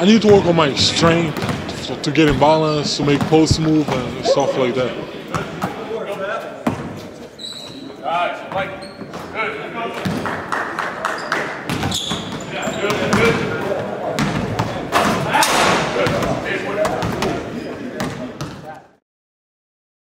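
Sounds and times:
basketball bouncing on wooden floor: 0:01.4 - 0:01.7, 0:11.7 - 0:13.4.

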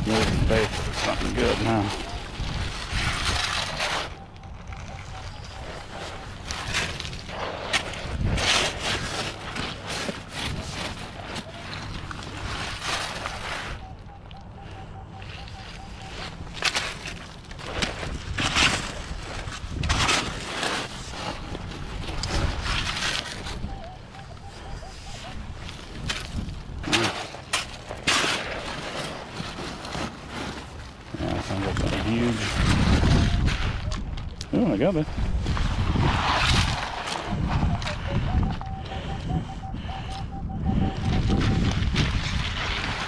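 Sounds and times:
stones crunching against metal shovel: 0:02.5 - 0:04.3, 0:05.3 - 0:13.7, 0:16.4 - 0:23.7, 0:25.9 - 0:33.0
metal detector tone: 0:03.3 - 0:06.7, 0:13.2 - 0:16.6, 0:23.5 - 0:25.4, 0:37.3 - 0:41.8.

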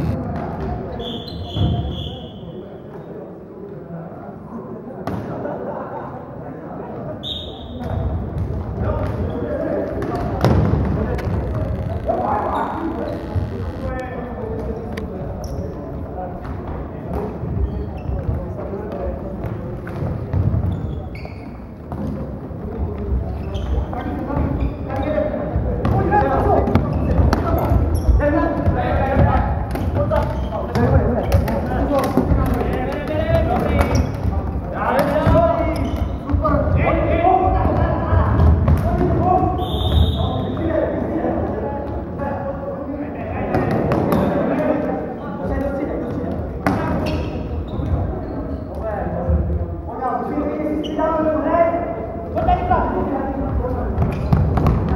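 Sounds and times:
footfalls on wooden court: 0:53.5 - 0:54.9.

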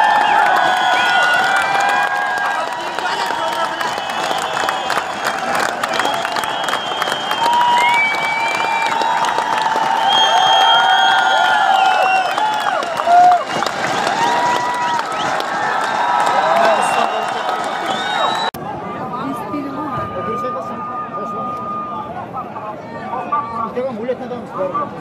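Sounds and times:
people clapping: 0:00.0 - 0:18.6
crowd roar: 0:00.0 - 0:22.4
crowd shouting and cheering: 0:00.0 - 0:24.0.

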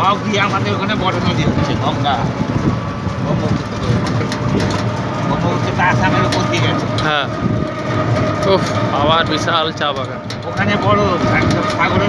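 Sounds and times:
road noise rumble: 0:00.0 - 0:12.0
vehicle engine running: 0:00.0 - 0:12.0
voices: 0:00.0 - 0:12.0.

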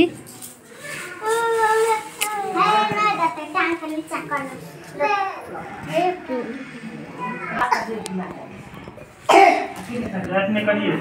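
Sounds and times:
person coughing loudly: 0:07.6 - 0:08.0, 0:09.3 - 0:09.8.

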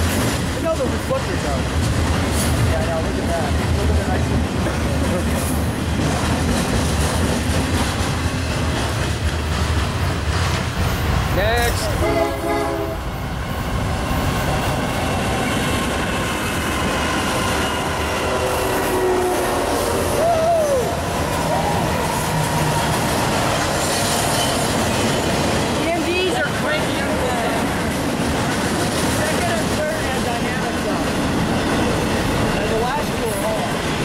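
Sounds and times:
freight train passing: 0:00.0 - 0:34.0
wheels rattling on rails: 0:00.0 - 0:34.0.

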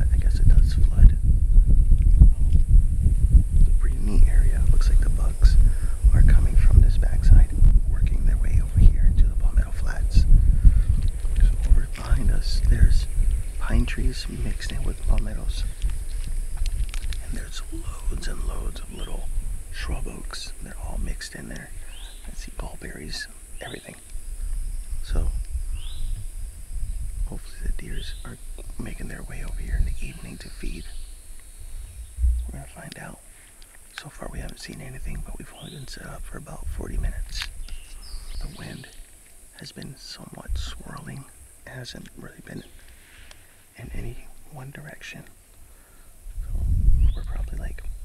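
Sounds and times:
man whispering: 0:00.0 - 0:01.3, 0:03.7 - 0:15.8, 0:17.1 - 0:24.1, 0:25.0 - 0:25.4, 0:27.2 - 0:31.0, 0:32.4 - 0:45.4, 0:46.4 - 0:48.0
wind buffeting microphone: 0:00.0 - 0:33.2, 0:34.0 - 0:39.1, 0:39.7 - 0:45.0, 0:46.1 - 0:48.0.

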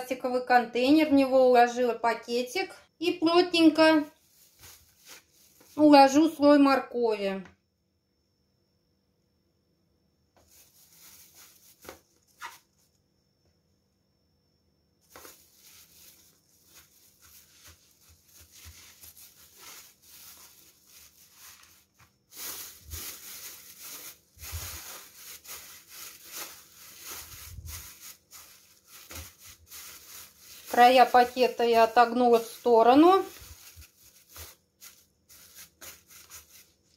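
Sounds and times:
plastic bag crinkling: 0:04.1 - 0:05.9, 0:10.4 - 0:12.6, 0:15.0 - 0:36.9.

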